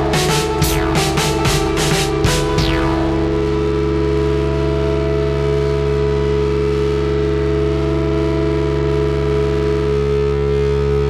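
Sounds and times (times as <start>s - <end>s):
synthesizer drone: 0.0s - 11.0s.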